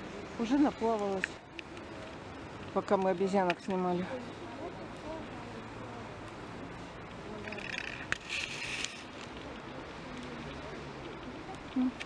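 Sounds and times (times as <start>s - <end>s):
distant voices: 0.0s - 12.0s
rustling hiss: 0.0s - 12.0s.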